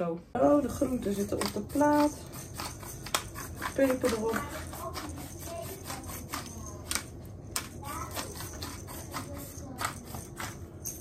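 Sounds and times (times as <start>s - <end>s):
pepper mill grinding: 0.8s - 11.0s.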